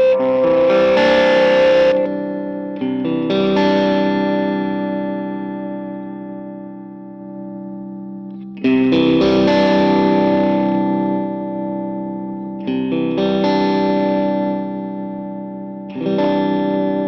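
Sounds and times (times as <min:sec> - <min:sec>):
electric guitar chords ringing: 0:00.0 - 0:17.0.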